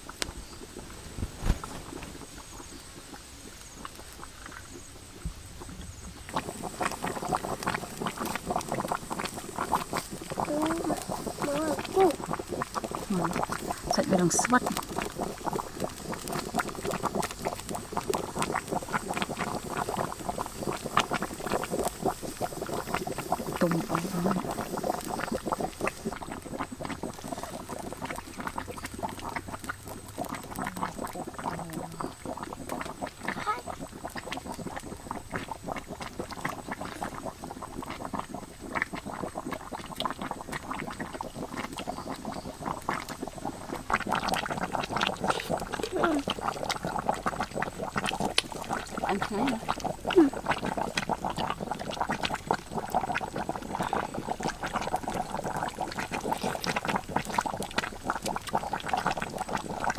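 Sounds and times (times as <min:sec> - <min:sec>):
sauce simmering in wok: 0:00.0 - 0:59.9.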